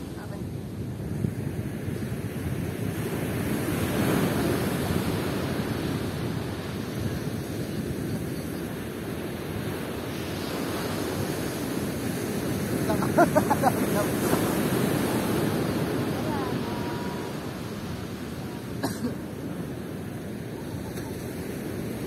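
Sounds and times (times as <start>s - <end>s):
ocean surf washing onto beach: 0.0s - 22.0s.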